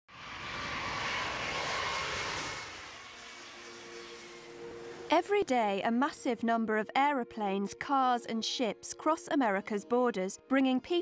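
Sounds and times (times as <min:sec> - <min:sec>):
jet engines roaring and whining: 0:00.1 - 0:05.8.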